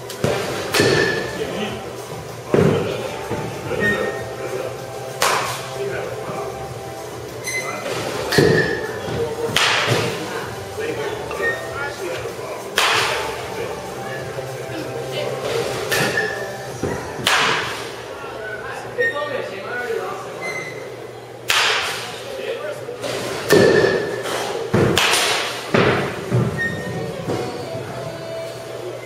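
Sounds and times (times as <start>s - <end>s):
balls hitting netting: 0.1s - 1.4s, 5.0s - 5.8s, 7.8s - 10.3s, 12.7s - 13.3s, 15.4s - 18.0s, 21.5s - 22.2s, 23.0s - 27.5s
baseball bat cracking ball: 5.1s - 5.6s, 9.5s - 10.2s, 12.7s - 13.2s, 17.2s - 17.8s, 21.5s - 22.1s, 24.7s - 26.1s.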